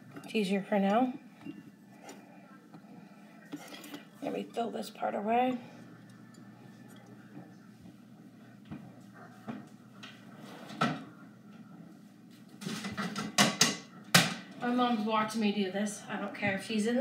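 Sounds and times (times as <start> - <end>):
dishes clattering: 12.6 - 14.4.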